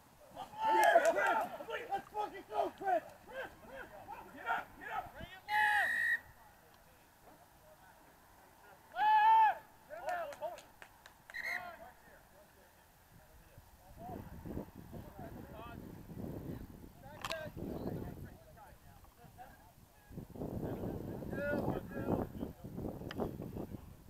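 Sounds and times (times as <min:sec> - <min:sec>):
men shouting calls: 0:00.3 - 0:06.3, 0:08.8 - 0:10.5.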